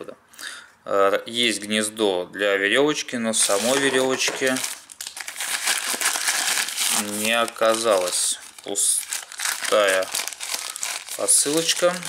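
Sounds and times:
plastic mailer bag crinkling: 0:03.4 - 0:12.0.

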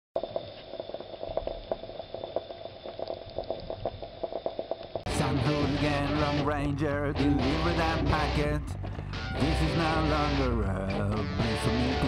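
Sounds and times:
small pops and gurgles: 0:00.2 - 0:05.1.

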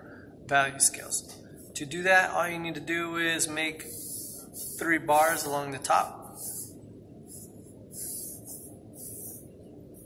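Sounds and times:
pencil scratching on paper: 0:03.8 - 0:05.5, 0:06.3 - 0:10.0.

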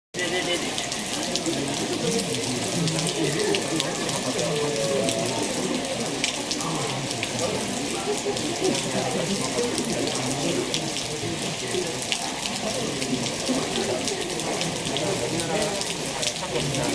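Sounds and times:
people talking: 0:00.2 - 0:16.9
steady rain falling: 0:00.2 - 0:16.9
water drips: 0:00.2 - 0:16.9.

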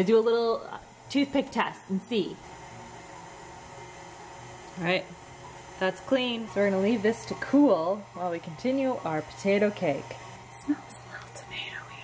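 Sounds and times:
woman's voice: 0:00.0 - 0:02.4, 0:04.8 - 0:05.2, 0:05.8 - 0:12.0
steady low hum with hiss: 0:00.0 - 0:12.0.

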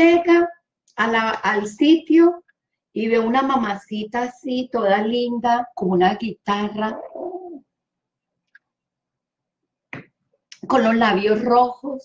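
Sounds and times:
dove cooing: 0:06.9 - 0:07.6.

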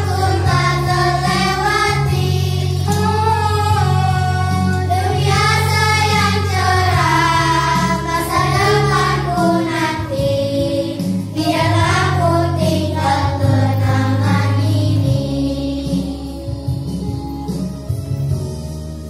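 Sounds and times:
girls singing together: 0:00.0 - 0:16.5
karaoke backing track: 0:00.0 - 0:19.0.

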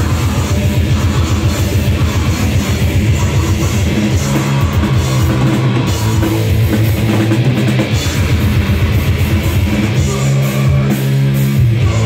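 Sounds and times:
distorted electric guitars: 0:00.0 - 0:12.0
fast dense drumming: 0:00.0 - 0:12.0.

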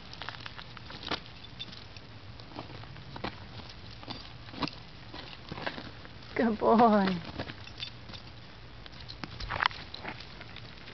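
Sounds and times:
outdoor background noise: 0:00.0 - 0:10.9
dog scrabbling on gravel: 0:09.0 - 0:10.9
footsteps crunching on gravel: 0:09.0 - 0:10.9.

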